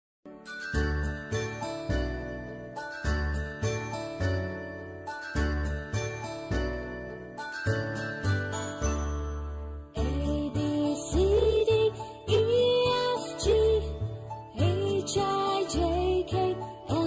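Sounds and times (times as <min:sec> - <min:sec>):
bell-like tinkling melody: 0:00.3 - 0:17.0.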